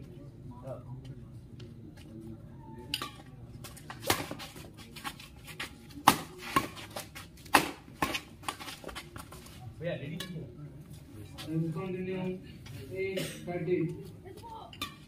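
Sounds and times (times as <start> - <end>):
rackets hitting shuttlecock: 2.9 - 4.5, 6.0 - 9.2, 14.8 - 15.0.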